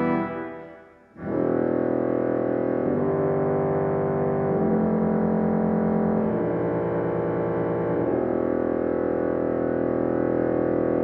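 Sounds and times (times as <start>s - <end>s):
pipe organ sustained chord: 0.0s - 2.9s.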